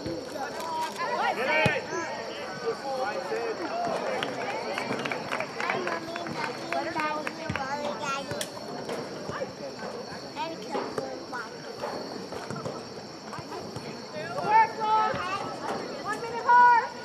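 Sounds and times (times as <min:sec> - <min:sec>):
girls shouting and calling: 0:00.8 - 0:02.6, 0:14.4 - 0:17.0.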